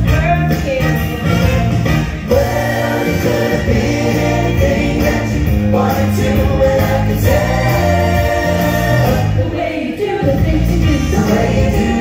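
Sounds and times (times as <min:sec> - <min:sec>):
bass line accompaniment: 0:00.0 - 0:12.0
group of voices singing: 0:02.2 - 0:12.0.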